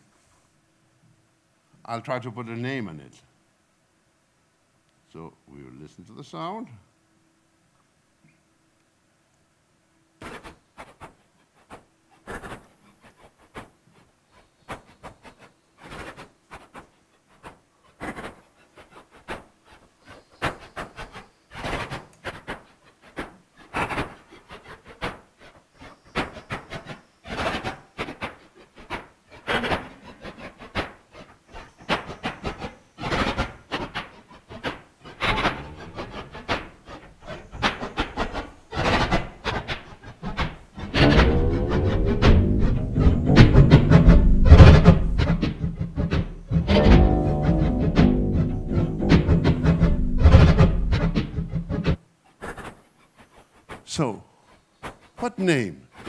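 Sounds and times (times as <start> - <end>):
rhythm of sharp taps and clicks: 40.8 - 52.0
pitched electronic tones: 46.4 - 51.3.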